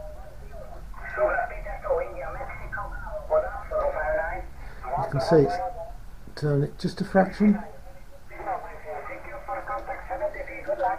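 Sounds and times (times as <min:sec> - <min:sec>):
faint radio hiss: 0:00.0 - 0:10.9.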